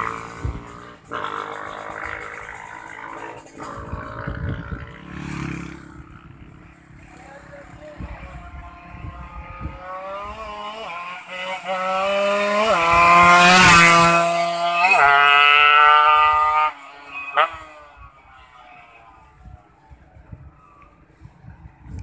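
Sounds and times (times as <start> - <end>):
motorcycle accelerating and passing by: 0.0 - 19.2.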